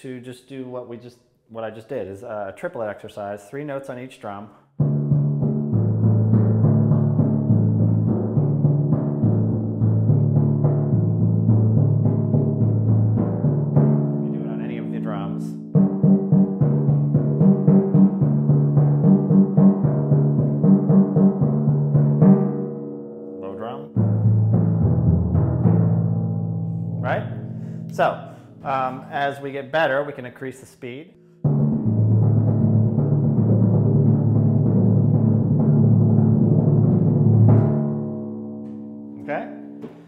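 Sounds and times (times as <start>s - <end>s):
timpani played with felt mallets: 4.8s - 29.4s, 31.2s - 39.9s.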